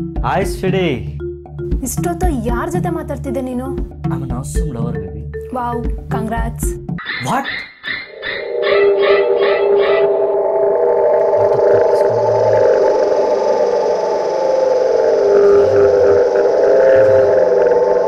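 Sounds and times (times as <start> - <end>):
sustained droning chord: 8.1 - 18.0.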